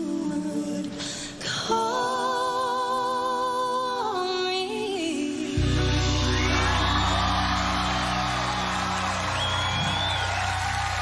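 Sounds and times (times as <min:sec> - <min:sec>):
live band holding low chord: 0:05.6 - 0:11.0
audience cheering: 0:06.0 - 0:11.0
high whoops: 0:06.2 - 0:11.0.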